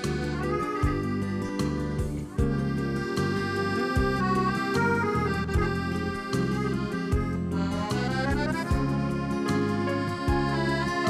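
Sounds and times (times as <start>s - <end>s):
drum beat: 0.0s - 2.8s, 3.8s - 4.5s, 5.2s - 6.0s, 7.1s - 7.6s, 8.3s - 9.6s, 10.2s - 10.6s
accordion melody: 0.0s - 11.0s
bass line: 0.0s - 11.0s.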